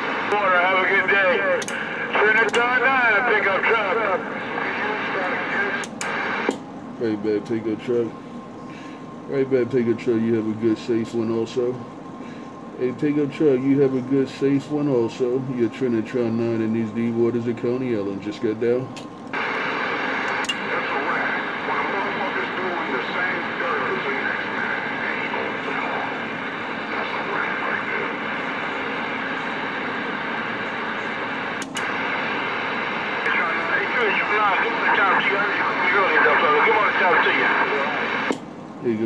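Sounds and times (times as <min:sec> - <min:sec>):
distorted warbling radio voices: 0:00.0 - 0:06.5, 0:19.4 - 0:38.3
radio static and hum: 0:00.0 - 0:39.0.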